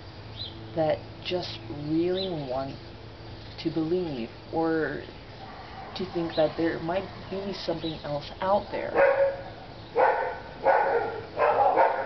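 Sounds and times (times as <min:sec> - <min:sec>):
dog barking: 0:09.0 - 0:12.0.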